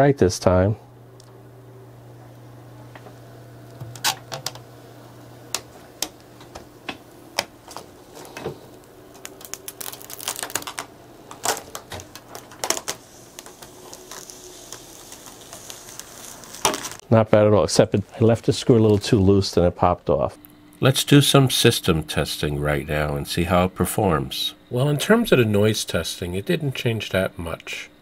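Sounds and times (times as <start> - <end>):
plastic film peeling crackles: 5.5 - 17.0, 17.8 - 19.3
soft hiss: 12.9 - 27.9.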